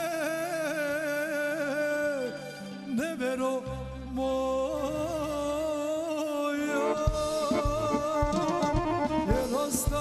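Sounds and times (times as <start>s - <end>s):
band accompaniment: 4.5s - 10.0s.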